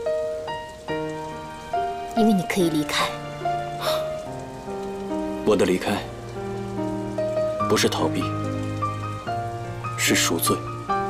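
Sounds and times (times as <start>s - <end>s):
soft ambient music: 0.0s - 11.0s
steady rain: 0.0s - 11.0s.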